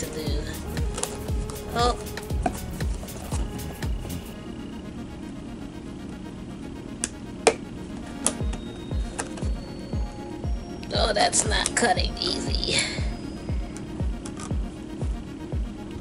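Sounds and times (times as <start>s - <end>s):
background music with beat: 0.0s - 16.0s.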